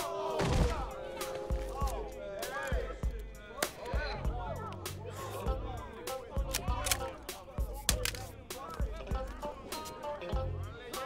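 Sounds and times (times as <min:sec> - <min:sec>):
crowd voices: 0:00.0 - 0:11.0
film music: 0:00.0 - 0:11.0.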